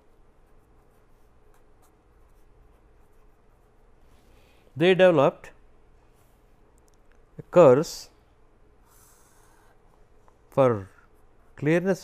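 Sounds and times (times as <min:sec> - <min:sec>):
marker pen scratching on paper: 0:00.0 - 0:04.0
low room hum: 0:00.0 - 0:12.0.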